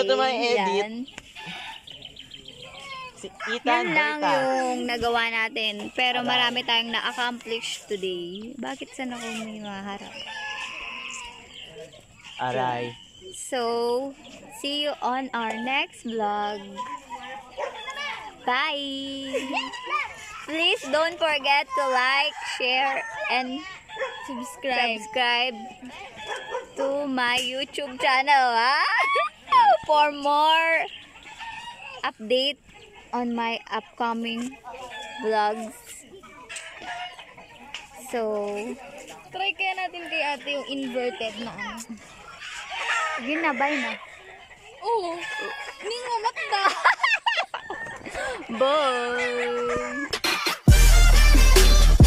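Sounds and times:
chickens calling: 0:00.0 - 0:52.0
rooster crowing: 0:03.3 - 0:04.8, 0:10.0 - 0:11.6, 0:21.7 - 0:26.8.

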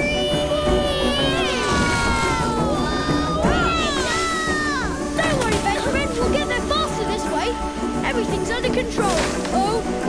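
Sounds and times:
high voices gliding whoops: 0:00.0 - 0:05.0
background music: 0:00.0 - 0:10.0.

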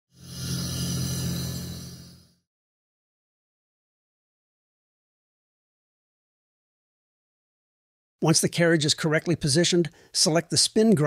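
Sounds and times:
bright hiss swell: 0:00.1 - 0:02.4.

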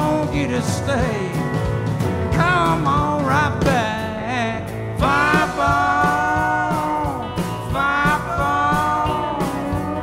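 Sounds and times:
country band playing: 0:00.0 - 0:10.0.

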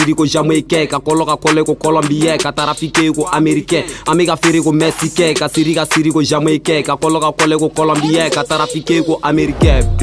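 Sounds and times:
man rapping over a beat: 0:00.0 - 0:10.0
steady bass line: 0:09.4 - 0:10.0.

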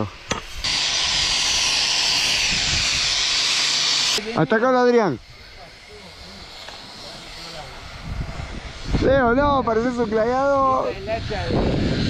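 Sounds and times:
angle grinder grinding steel: 0:00.0 - 0:12.0.

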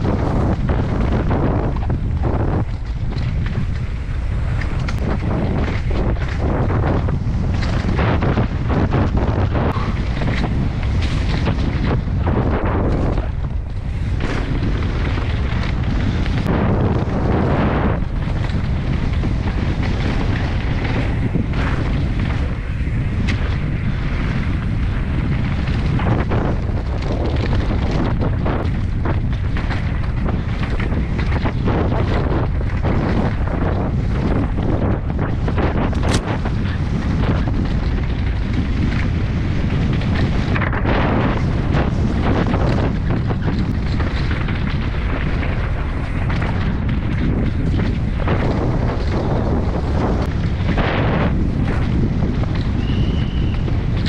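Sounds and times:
bike knocking and rattling: 0:00.0 - 0:54.0
wind buffeting microphone: 0:00.0 - 0:54.0.

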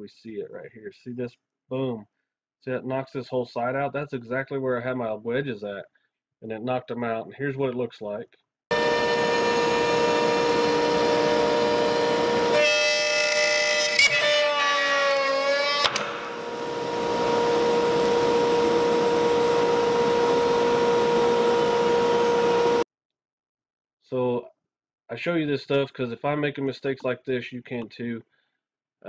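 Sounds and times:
router spindle high whine: 0:08.7 - 0:22.8.

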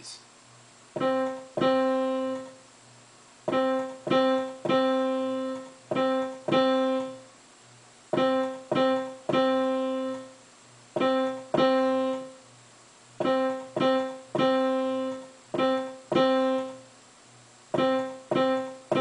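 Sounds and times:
digital piano notes: 0:01.0 - 0:02.6, 0:03.4 - 0:07.3, 0:08.1 - 0:10.4, 0:11.0 - 0:12.4, 0:13.2 - 0:16.9, 0:17.7 - 0:19.0.

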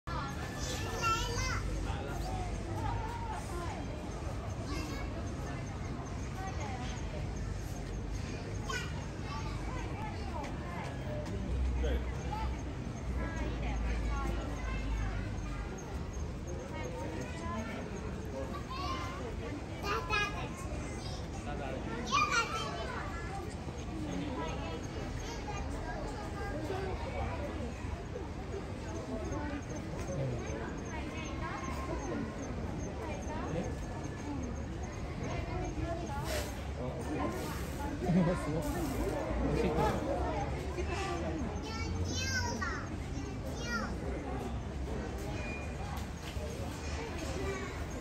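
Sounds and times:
children calling and chattering: 0:00.0 - 0:48.0.

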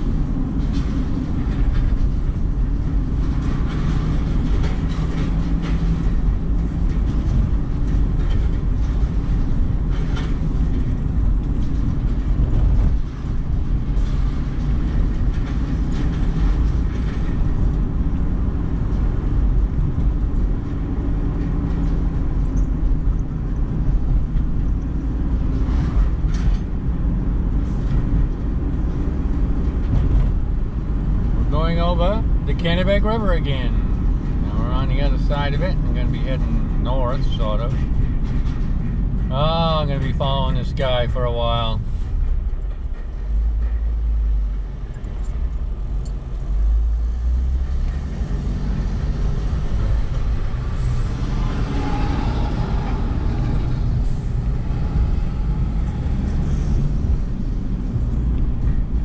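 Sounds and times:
car engine and tyres rumble: 0:00.0 - 0:59.0
person's voice: 0:31.5 - 0:33.8, 0:34.4 - 0:37.8, 0:39.3 - 0:41.8.

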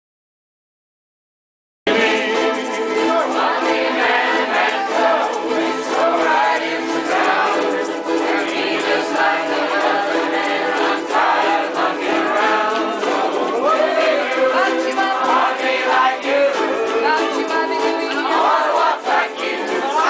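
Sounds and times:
group singing: 0:01.9 - 0:20.0
ukuleles strumming: 0:01.9 - 0:20.0.

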